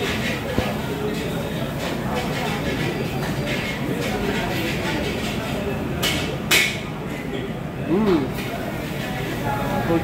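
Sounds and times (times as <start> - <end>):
restaurant din of voices: 0.0 - 10.0.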